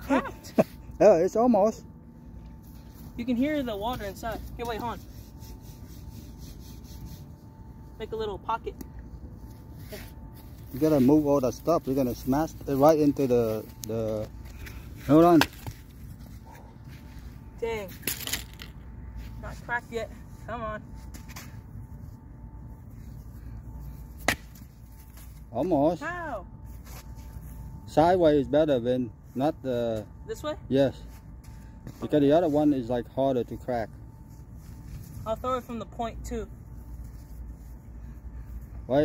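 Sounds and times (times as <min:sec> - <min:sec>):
coconut scraping in sand: 0:03.8 - 0:07.9.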